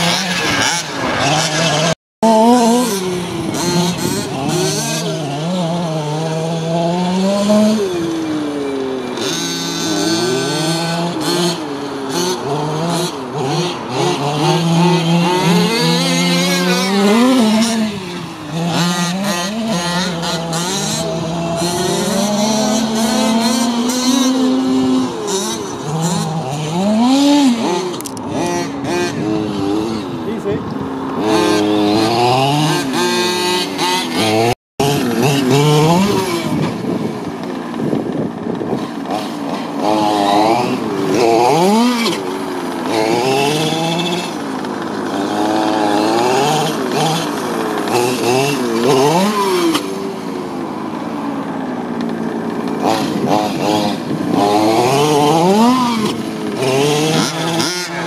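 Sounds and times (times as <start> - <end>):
small two-stroke engines revving: 0.0 - 58.0.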